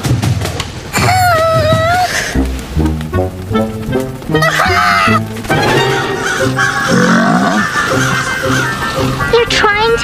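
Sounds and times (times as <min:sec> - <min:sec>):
cartoon music: 0:01.0 - 0:10.0.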